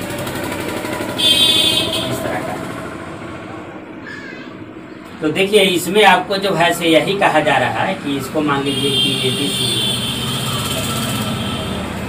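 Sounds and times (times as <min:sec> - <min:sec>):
mechanical whir: 0:00.0 - 0:03.8, 0:09.4 - 0:12.0.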